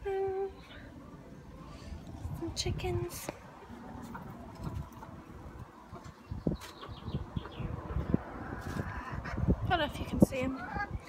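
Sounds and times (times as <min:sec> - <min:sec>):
chickens clucking: 0:03.6 - 0:09.6, 0:10.3 - 0:11.0.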